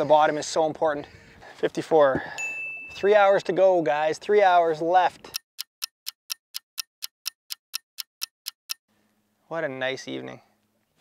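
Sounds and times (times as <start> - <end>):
clock-like ticking: 5.3 - 8.9.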